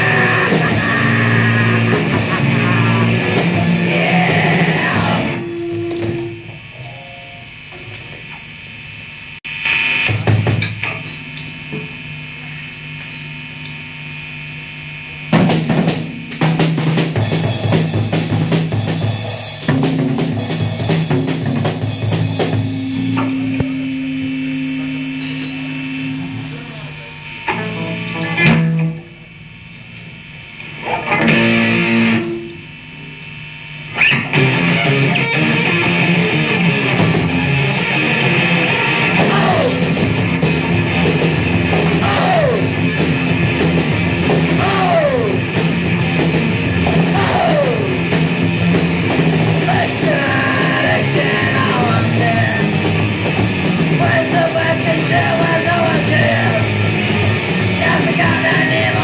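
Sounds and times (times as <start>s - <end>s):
punk band playing: 0.0s - 6.8s, 10.1s - 10.9s, 15.3s - 29.2s, 31.0s - 32.5s, 34.0s - 59.0s
stray guitar notes: 0.0s - 7.5s, 19.7s - 29.4s, 30.5s - 32.8s, 33.9s - 59.0s
amplifier hum: 0.0s - 59.0s
rough burst of band noise: 15.2s - 28.6s.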